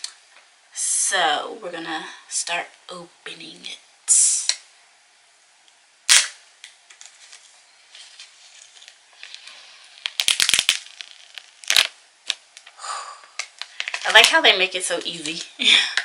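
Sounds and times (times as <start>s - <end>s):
plastic wrap snapping: 6.1s - 7.4s, 8.1s - 12.8s, 13.4s - 16.0s
plastic wrap crackling: 6.1s - 16.0s
faint plastic rustling: 6.6s - 16.0s.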